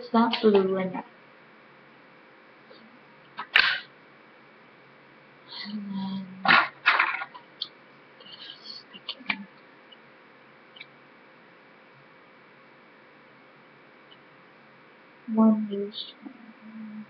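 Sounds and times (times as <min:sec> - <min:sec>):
person humming: 0:15.4 - 0:17.0.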